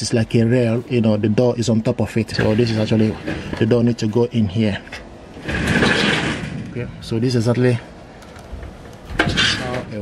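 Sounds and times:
metal sliding door scraping: 5.4 - 6.6, 9.1 - 9.9.

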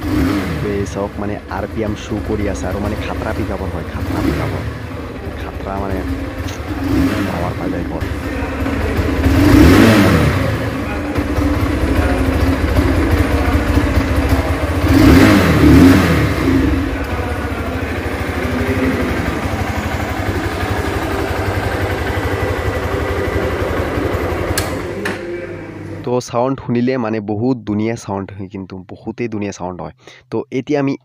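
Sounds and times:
motorcycle engine idling and revving: 0.0 - 26.5.

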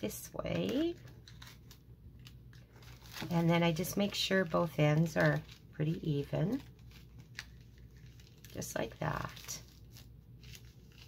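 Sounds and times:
paper filter rustling: 0.0 - 11.0.

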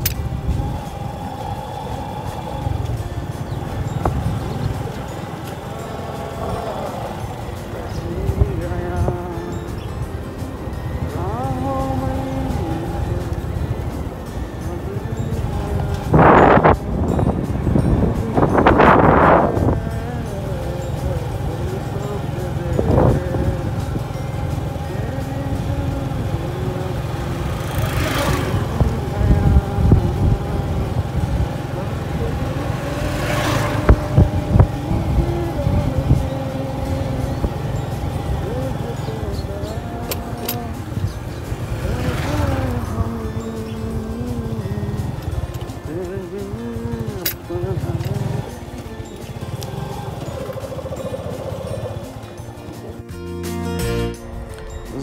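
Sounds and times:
wind rush: 0.0 - 20.4, 27.7 - 37.7
held pitched tone: 0.0 - 55.0
motorcycle engine running: 0.0 - 55.0
vehicle rumbling on paved road: 0.0 - 55.0.

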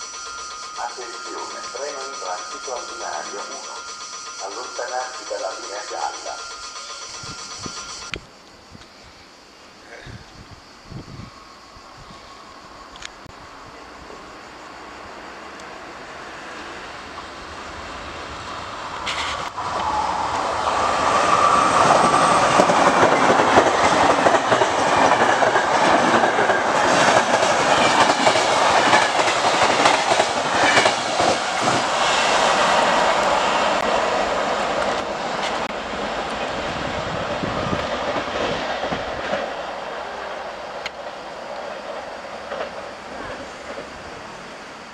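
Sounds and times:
passenger train rumble: 0.0 - 8.4, 10.0 - 44.9
train wheels clattering over rail joints: 21.8 - 32.0.

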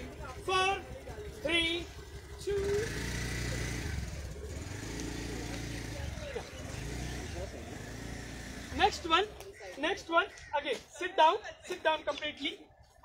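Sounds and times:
faint voices: 0.0 - 13.0
vehicle engine rumbling: 0.0 - 13.0.

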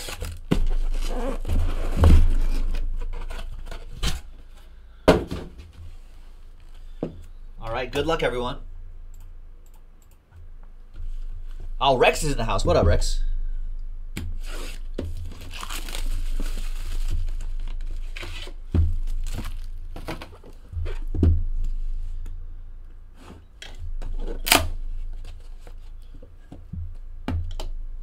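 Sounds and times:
plastic wrap tearing and crinkling: 0.0 - 4.3, 14.4 - 20.7
low electrical hum: 0.0 - 28.0.

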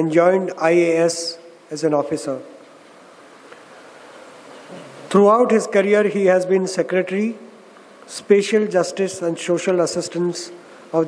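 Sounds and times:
low microphone hiss: 0.0 - 11.0.

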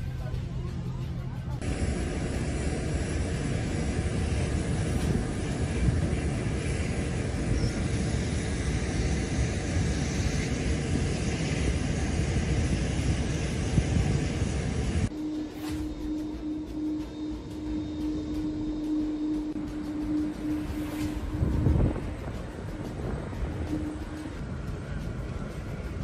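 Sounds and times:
jet engines rushing: 0.0 - 26.0.

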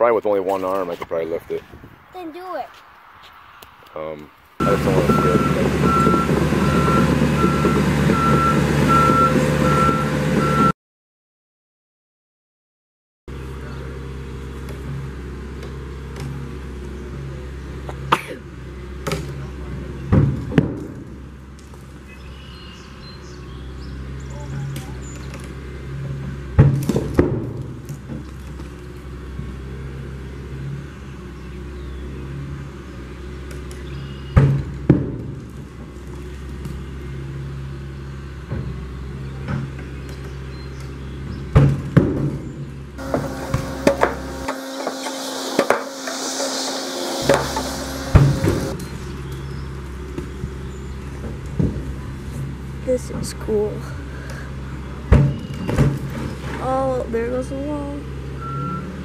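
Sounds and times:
excavator engine running: 4.6 - 10.7, 43.0 - 48.8.

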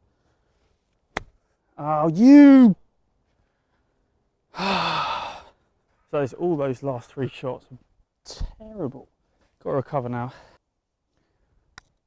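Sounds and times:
man sighing heavily: 4.5 - 5.6.

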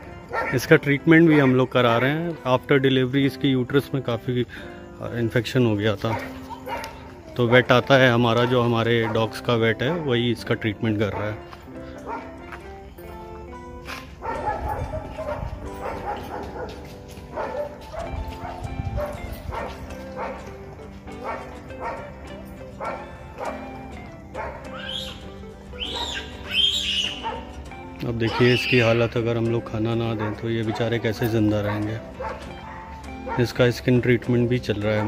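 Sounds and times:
background music: 0.0 - 35.0
dog barking and yelping: 0.2 - 2.3, 6.0 - 7.6, 8.2 - 10.2, 11.0 - 12.4, 14.2 - 20.5, 21.2 - 25.2, 25.8 - 27.6, 28.2 - 29.0, 30.1 - 33.5.

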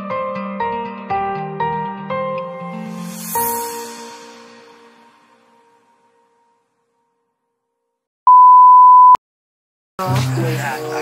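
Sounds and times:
steady test-tone beep: 8.3 - 9.2.

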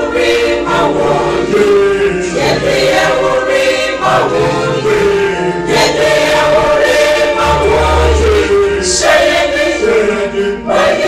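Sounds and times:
choir singing held chords: 0.0 - 11.0.

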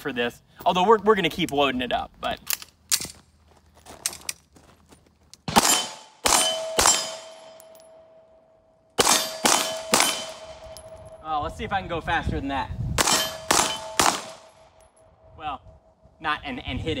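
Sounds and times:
pistol shots: 5.5 - 7.6, 9.0 - 10.8, 13.0 - 14.7
steel target ringing: 5.6 - 8.2, 9.0 - 11.3, 13.0 - 14.1.

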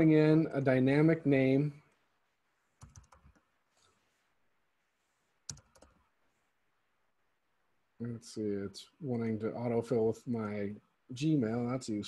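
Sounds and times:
typing on keyboard: 2.8 - 3.4, 5.5 - 6.0.

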